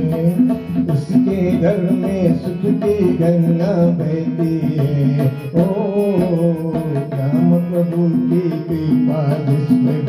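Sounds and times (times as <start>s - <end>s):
harmonium melody: 0.0s - 10.0s.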